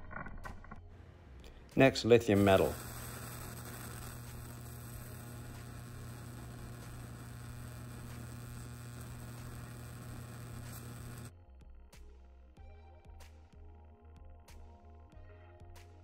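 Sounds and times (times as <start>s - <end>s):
plasma flame electrical hum: 1.6s - 11.4s
plasma flame hiss: 2.0s - 11.3s.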